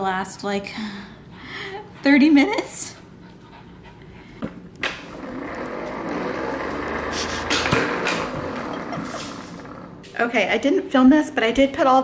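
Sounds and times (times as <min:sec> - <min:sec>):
motor humming with whine: 0:04.7 - 0:10.1
ball launcher throwing burst: 0:07.1 - 0:09.4.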